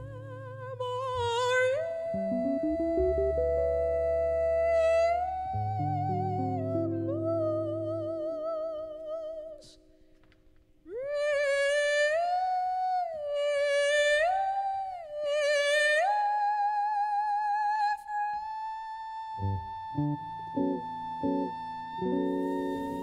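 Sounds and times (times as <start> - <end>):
woman singing with vibrato: 0.0 - 9.7, 10.9 - 23.0.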